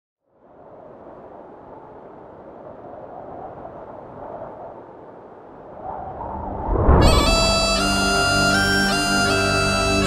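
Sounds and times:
steady rushing noise: 0:00.7 - 0:08.4.

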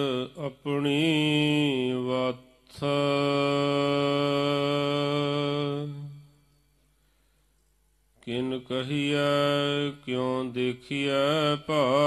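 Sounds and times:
man chanting: 0:00.0 - 0:06.5, 0:08.2 - 0:12.0.

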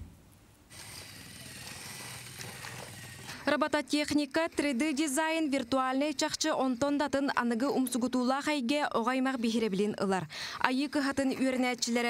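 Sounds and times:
small electric motors whining: 0:00.7 - 0:03.5.

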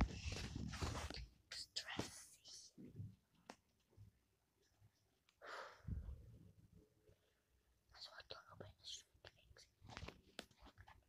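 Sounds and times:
boy whispering: 0:01.1 - 0:02.9, 0:07.9 - 0:09.8.

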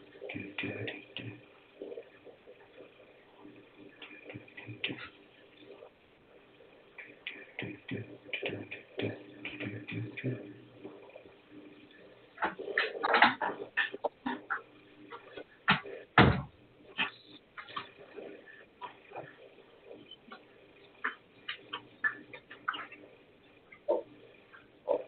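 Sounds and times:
muffled voices over telephone: 0:00.2 - 0:02.2, 0:04.0 - 0:05.9, 0:16.9 - 0:23.1.

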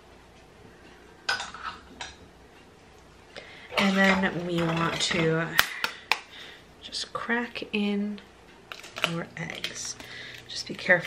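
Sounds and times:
kitchenware clinking: 0:03.7 - 0:05.9.

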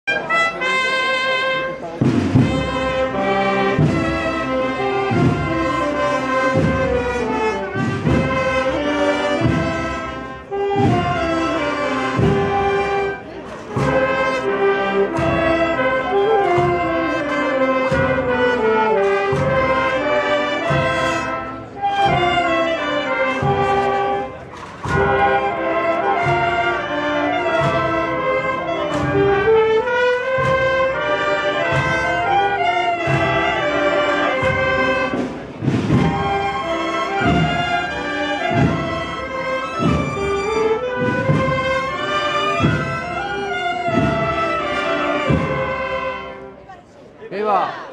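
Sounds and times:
brass band playing a march: 0:00.0 - 0:47.9
steady drum beat: 0:00.5 - 0:46.6.

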